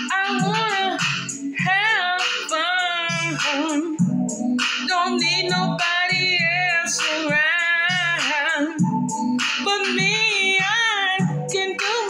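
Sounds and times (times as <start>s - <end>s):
woman singing sliding notes: 0.0s - 4.0s, 9.6s - 12.0s
upbeat backing track: 0.0s - 12.0s.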